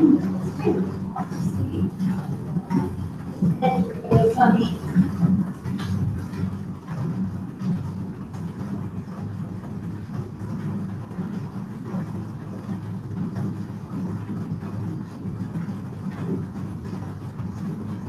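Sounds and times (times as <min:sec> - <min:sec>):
indoor bike trainers whirring: 0:00.0 - 0:18.0.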